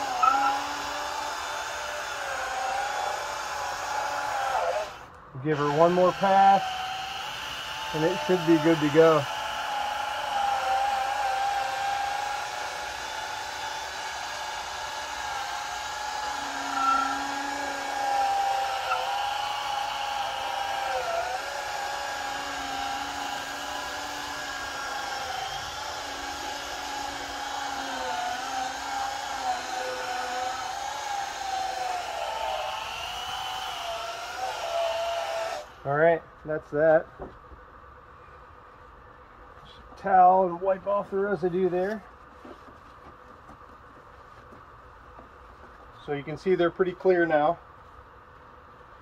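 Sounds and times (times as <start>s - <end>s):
cordless polisher motor whine: 0.0s - 35.8s.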